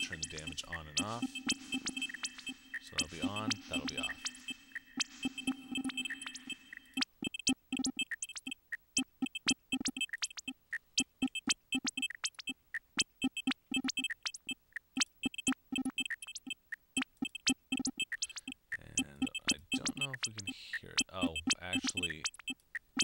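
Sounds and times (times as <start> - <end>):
glitchy electronic drum pattern: 0.0 - 23.0.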